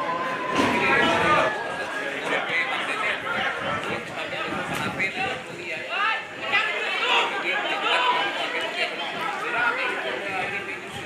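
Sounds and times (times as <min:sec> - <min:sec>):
spectators chattering: 0:00.0 - 0:11.0.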